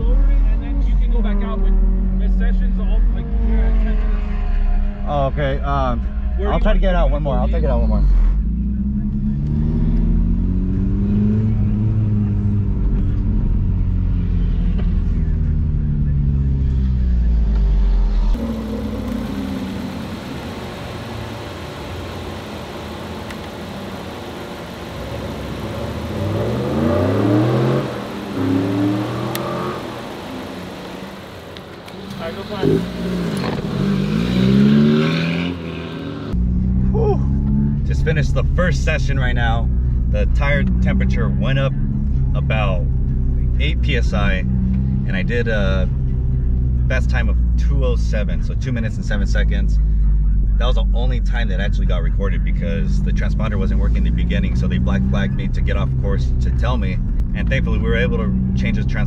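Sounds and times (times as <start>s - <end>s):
car engine revving: 0.0s - 59.0s.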